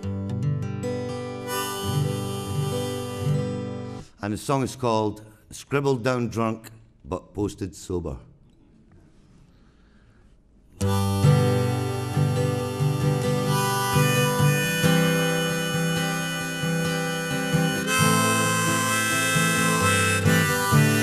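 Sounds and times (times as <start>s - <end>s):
acoustic guitar accompaniment: 0.0s - 4.2s, 10.8s - 21.0s
harmonica playing: 1.0s - 4.1s, 10.8s - 21.0s.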